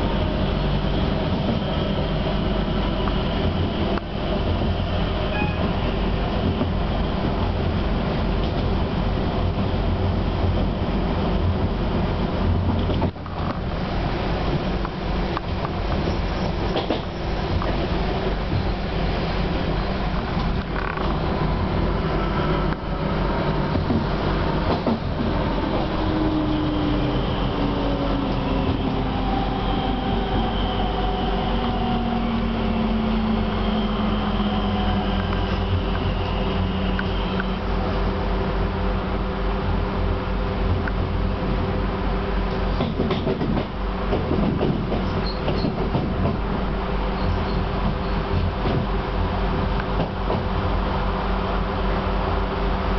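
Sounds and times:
train wheels rumbling on rail: 0:00.0 - 0:52.9
faint whining traction tones: 0:25.0 - 0:38.1.

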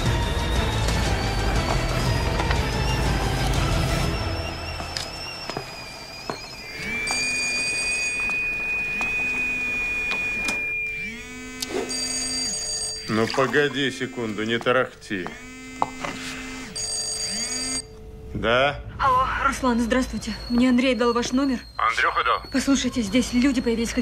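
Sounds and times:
tense film score drone: 0:00.0 - 0:07.7, 0:17.9 - 0:24.0
kettle whistling: 0:00.0 - 0:12.0, 0:19.9 - 0:24.0
mobile phone vibrating: 0:06.6 - 0:14.6, 0:15.3 - 0:17.8.

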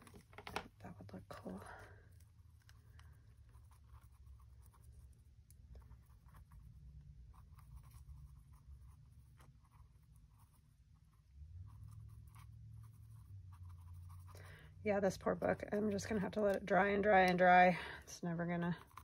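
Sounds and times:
low steady hum: 0:00.0 - 0:19.0
brush bristles scratching: 0:01.4 - 0:19.0.

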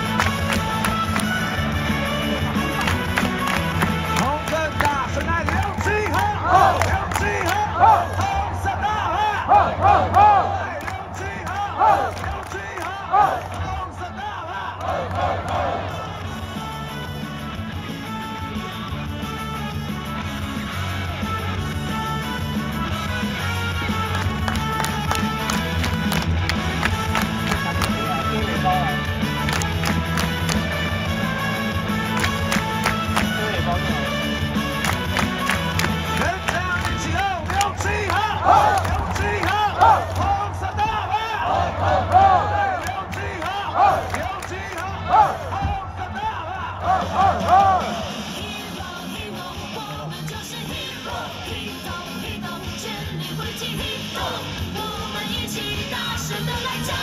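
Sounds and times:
people clapping: 0:00.0 - 0:09.0, 0:09.6 - 0:16.4, 0:23.7 - 0:50.9
cheer music with heavy beat: 0:00.0 - 0:57.0
crowd chanting: 0:05.9 - 0:16.2, 0:37.1 - 0:57.0.

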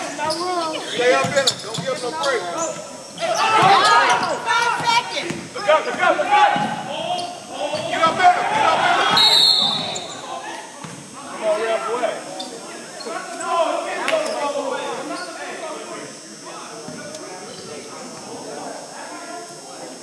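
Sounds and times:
voices calling out: 0:00.0 - 0:20.0.

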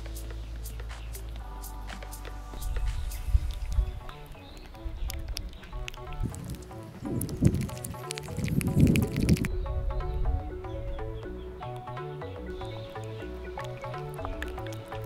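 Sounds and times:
background music: 0:00.0 - 0:15.0.

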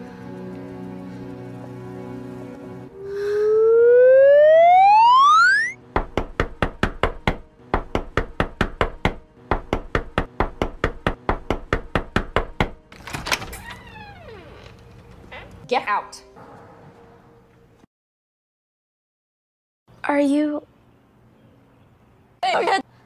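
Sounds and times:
loud rising tone: 0:02.9 - 0:05.8
knuckles knocking on wooden door: 0:06.0 - 0:12.8.

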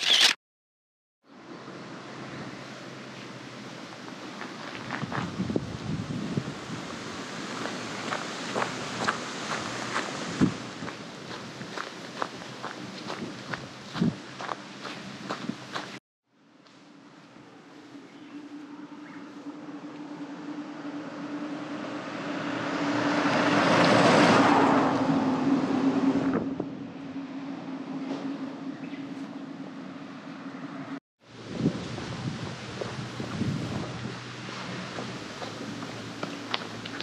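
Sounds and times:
car passing: 0:06.4 - 0:13.7, 0:18.4 - 0:31.0
steady low hum: 0:10.6 - 0:22.6.

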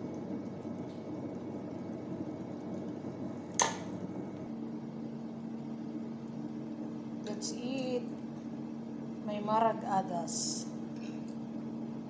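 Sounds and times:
kitchen appliance low hum: 0:00.0 - 0:12.0.

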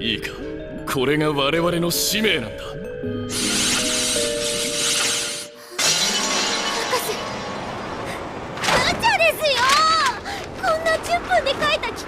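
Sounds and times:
dramatic music: 0:03.1 - 0:08.6
loud hissing crackle: 0:03.3 - 0:05.6
glass shattering crash: 0:05.8 - 0:08.0.

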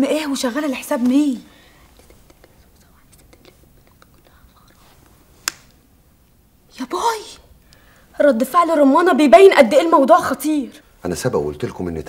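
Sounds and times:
soft breath or mouth noises: 0:01.5 - 0:05.3, 0:07.6 - 0:08.2.

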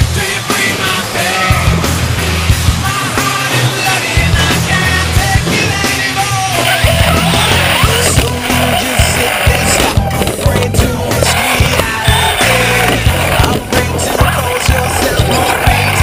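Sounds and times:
rock music: 0:00.0 - 0:16.0
toy truck wheels rattling: 0:03.2 - 0:16.0.

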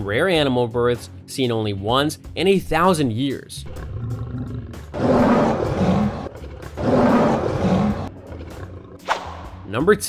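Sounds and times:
lion roaring: 0:03.6 - 0:09.1.

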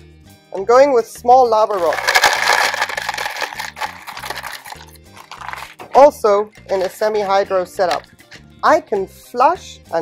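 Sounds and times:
background music with bass line: 0:00.0 - 0:10.0
pebbles rattling into a pot: 0:01.7 - 0:06.1, 0:06.7 - 0:08.1.

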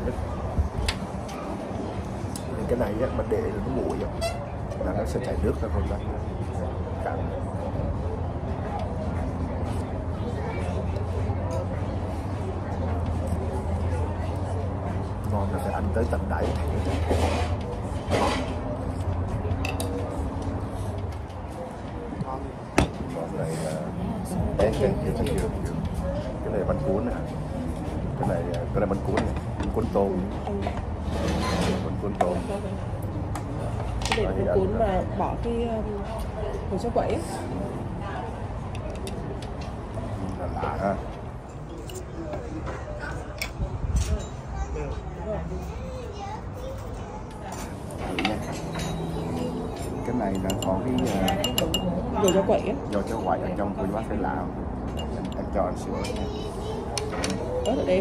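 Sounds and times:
faint voices: 0:00.0 - 0:58.0
tableware clicking on plates: 0:50.3 - 0:52.4
spoon in ceramic bowl: 0:50.4 - 0:52.4.

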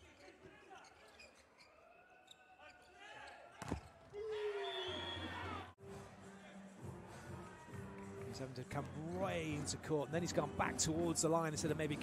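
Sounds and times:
sneaker squeaks: 0:00.0 - 0:05.3.

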